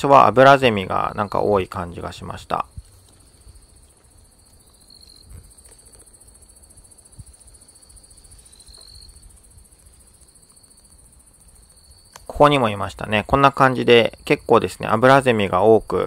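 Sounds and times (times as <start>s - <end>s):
night insects chorus: 0.0s - 16.0s.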